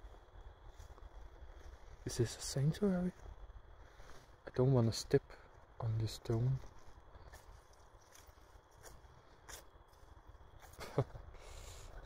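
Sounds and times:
faint low outdoor rumble: 0.0s - 12.0s.

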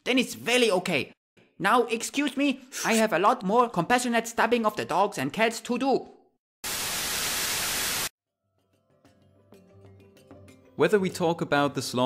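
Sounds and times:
loud static hiss: 6.7s - 8.1s.

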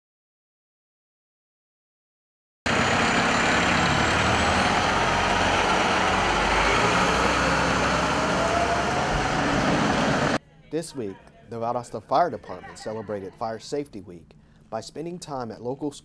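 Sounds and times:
fire engine engine running: 2.7s - 10.4s.

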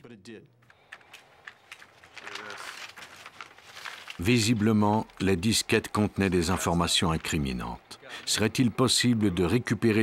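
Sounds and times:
man's voice: 4.2s - 10.0s.

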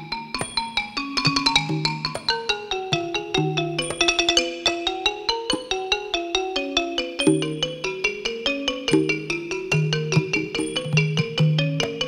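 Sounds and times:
wooden xylophone played rapidly: 0.0s - 12.0s.

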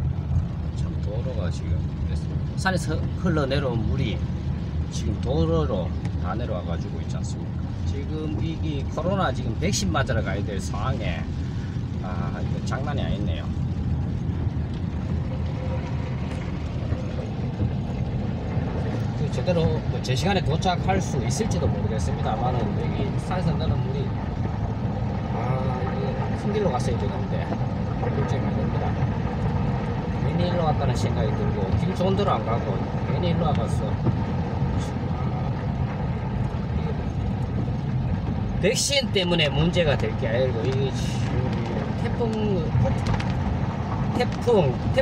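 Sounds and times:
car driving rumble: 0.0s - 45.0s
tyres running through floodwater: 0.0s - 45.0s.

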